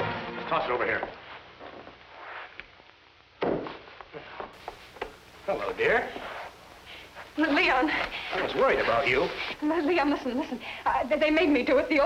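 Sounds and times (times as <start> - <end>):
faint soundtrack hiss: 0.0 - 12.0.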